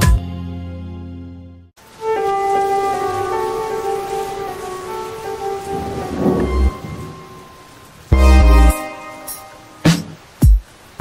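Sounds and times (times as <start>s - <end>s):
devotional music held notes: 1.8s - 9.8s
rain: 1.8s - 11.0s
low thunder rumble: 2.8s - 8.2s.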